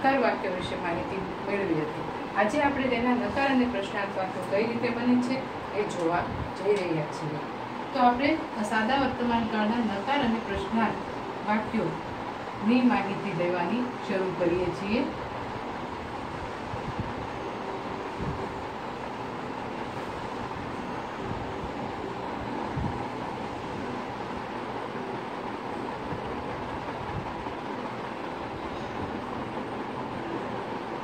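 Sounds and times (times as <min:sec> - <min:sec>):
steady rushing noise: 0:00.0 - 0:31.0.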